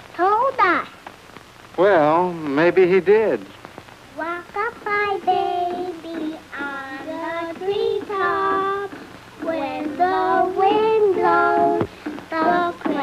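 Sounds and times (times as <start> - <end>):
children singing: 4.5 - 13.0.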